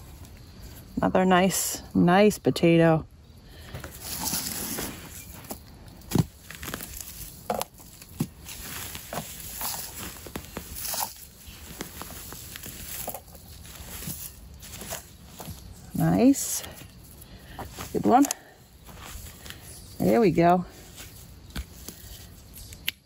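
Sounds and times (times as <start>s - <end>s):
hands digging through soil: 3.7s - 23.0s.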